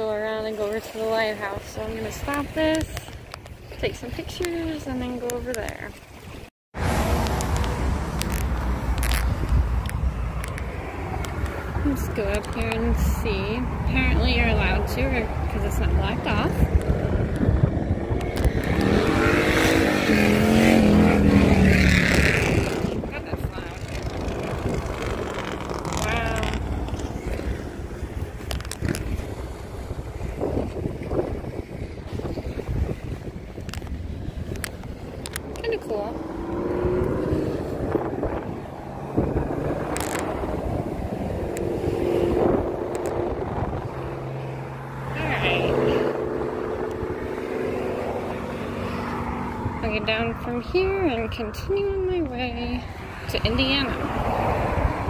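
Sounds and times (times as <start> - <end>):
road traffic passing: 0.0 - 55.0
wind buffeting microphone: 0.0 - 55.0
steady engine hum: 6.8 - 55.0.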